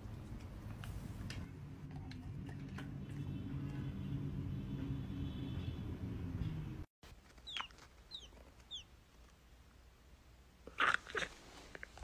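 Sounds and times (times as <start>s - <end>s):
baby bird peeping: 7.4s - 8.9s.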